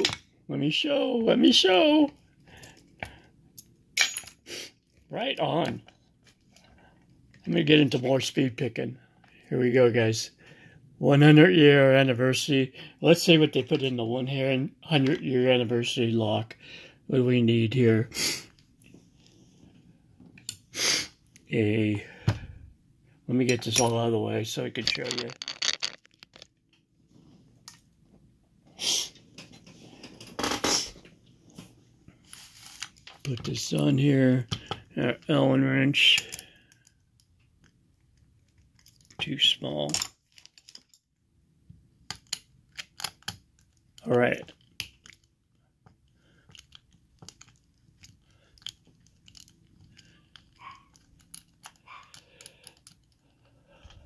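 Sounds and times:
metal tools clicking: 0:24.8 - 0:26.4
metal tools scraping: 0:24.8 - 0:26.4
small clicks and scraping: 0:24.8 - 0:26.8, 0:36.2 - 0:39.3, 0:39.9 - 0:41.0, 0:42.1 - 0:54.0.

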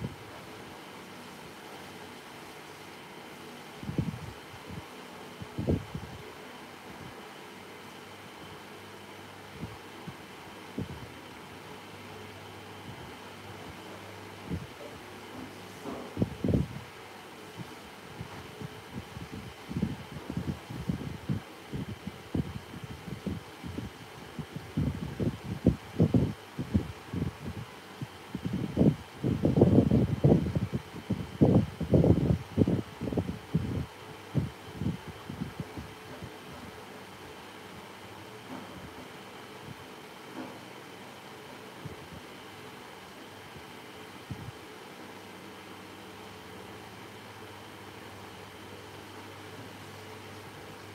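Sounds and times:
faint steady hum: 0:00.0 - 0:50.9.

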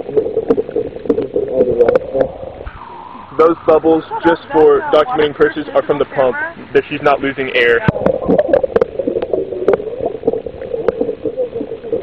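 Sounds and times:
air bubbling in water: 0:00.0 - 0:04.3, 0:07.8 - 0:12.0.

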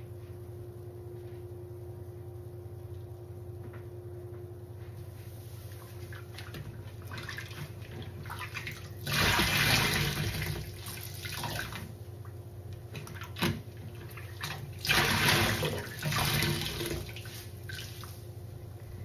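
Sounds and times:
water gushing from sponge: 0:07.1 - 0:11.8, 0:14.1 - 0:18.2.

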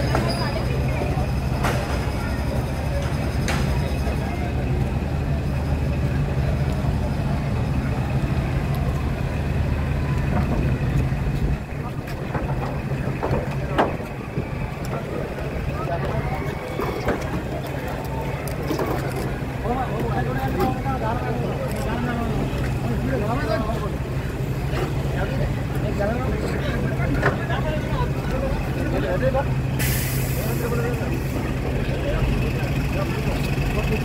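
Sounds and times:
low engine hum: 0:00.0 - 0:34.0
people's voices: 0:00.0 - 0:34.0.

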